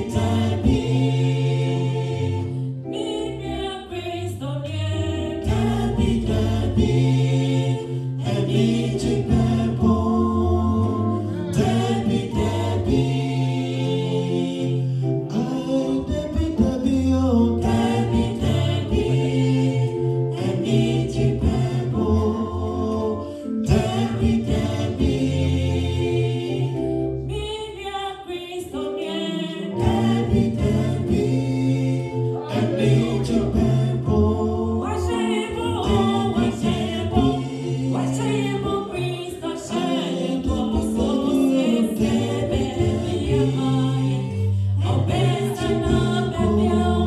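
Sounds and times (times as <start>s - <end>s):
gospel group singing in harmony: 0.0s - 47.0s.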